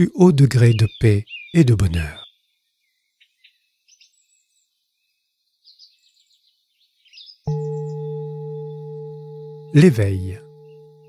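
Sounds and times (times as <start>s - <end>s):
faint bird chirps: 0.3s - 11.0s
singing bowl ringing: 7.5s - 11.0s.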